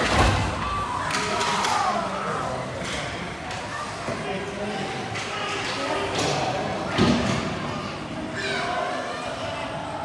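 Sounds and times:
murmur of rink: 0:00.0 - 0:10.0.

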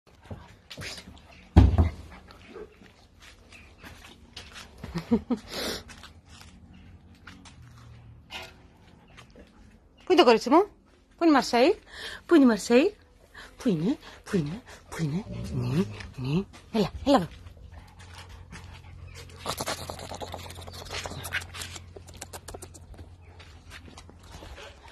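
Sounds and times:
dog panting: 0:13.2 - 0:24.9
dog making faint vocal sounds: 0:17.7 - 0:23.3.

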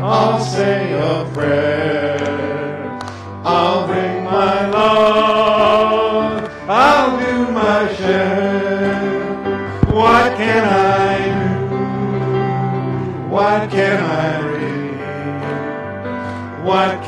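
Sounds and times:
congregation singing: 0:00.0 - 0:17.0
instrumental accompaniment: 0:09.2 - 0:13.0.

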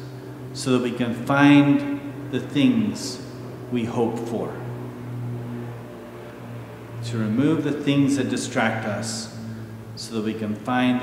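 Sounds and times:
steady low room hum: 0:00.0 - 0:11.0.

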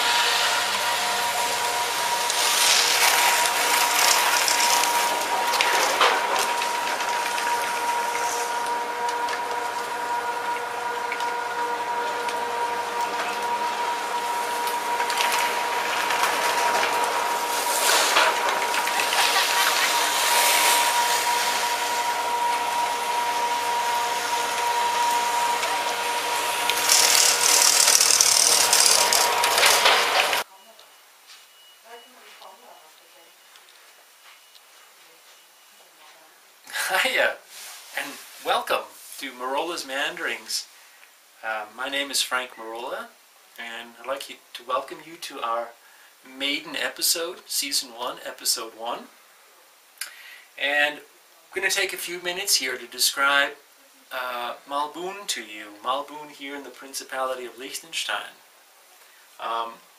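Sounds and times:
hiss: 0:00.0 - 0:05.2, 0:17.4 - 0:22.7, 0:36.7 - 0:39.2
chairlift machinery whining: 0:00.0 - 0:30.5.

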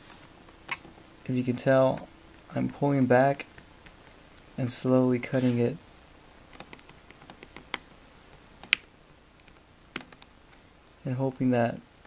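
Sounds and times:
vinyl wrap pulled back: 0:04.4 - 0:05.8.

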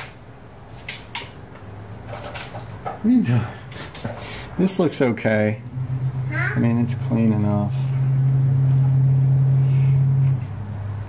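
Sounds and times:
low motor hum: 0:04.6 - 0:11.0.

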